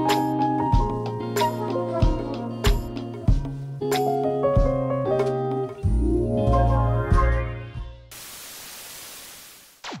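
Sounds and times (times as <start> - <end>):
television static hiss: 8.1 - 9.9
television switching off sweep: 8.1 - 10.0.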